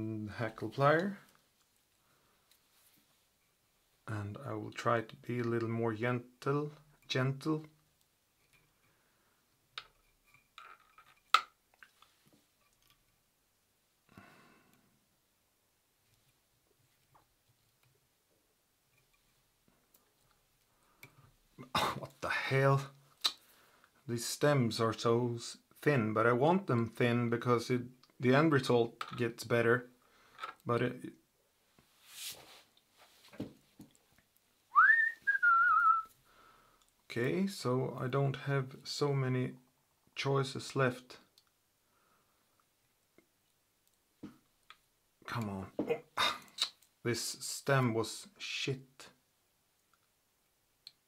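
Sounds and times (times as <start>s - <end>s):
man whistling: 34.7s - 36.1s.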